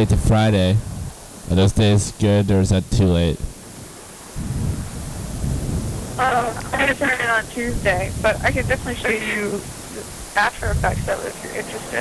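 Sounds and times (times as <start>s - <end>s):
low irregular rumble: 0.0s - 12.0s.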